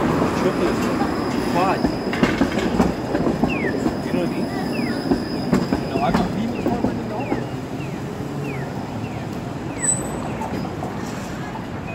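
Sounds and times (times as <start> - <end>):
streetcar wheels rumbling on rail: 0.0 - 11.9.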